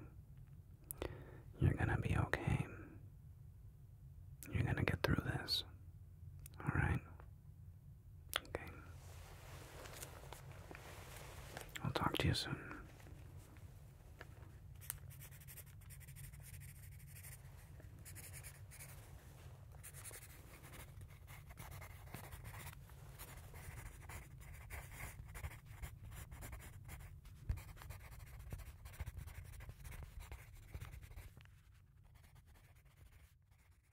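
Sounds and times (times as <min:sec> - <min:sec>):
low steady hum: 0:00.0 - 0:33.9
pencil scratching on paper: 0:14.8 - 0:17.4, 0:18.0 - 0:19.0, 0:19.8 - 0:33.9.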